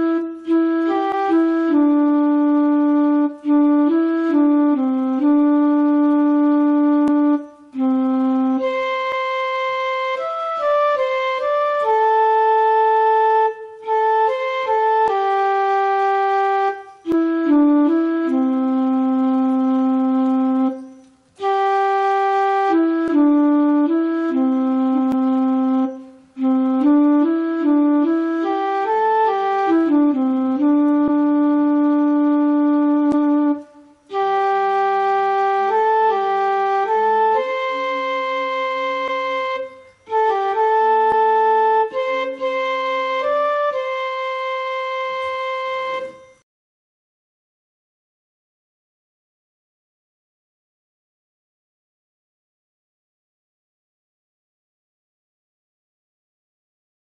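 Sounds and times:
electronic keyboard held note: 0.0s - 46.4s.

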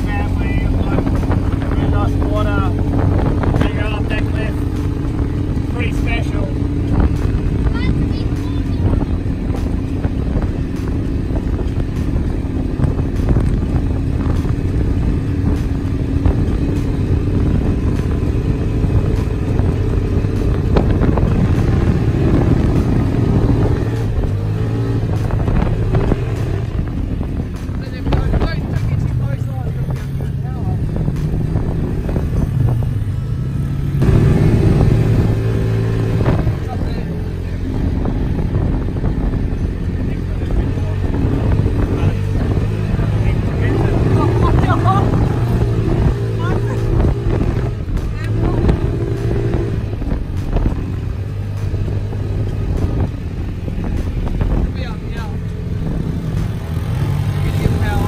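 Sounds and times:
quad bike engine running: 0.0s - 58.0s.

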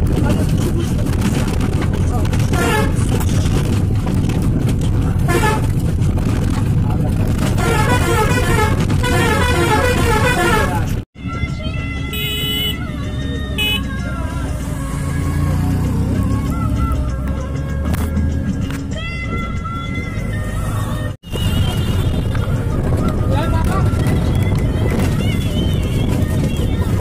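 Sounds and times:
vehicle engine and road noise: 0.0s - 27.0s
horn honking: 2.5s - 3.2s, 5.2s - 5.8s, 7.4s - 11.0s, 12.0s - 14.1s
music playing: 9.2s - 24.2s.

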